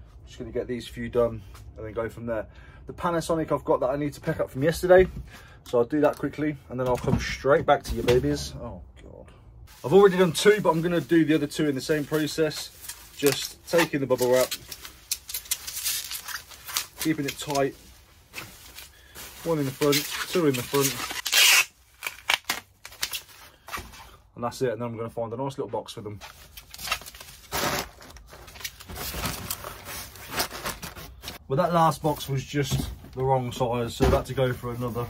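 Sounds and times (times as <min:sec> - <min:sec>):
bubble wrap crinkling: 0:09.7 - 0:23.5.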